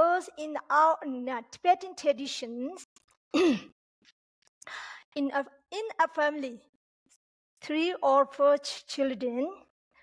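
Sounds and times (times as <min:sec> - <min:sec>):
woman clearing her throat: 0:03.3 - 0:03.7.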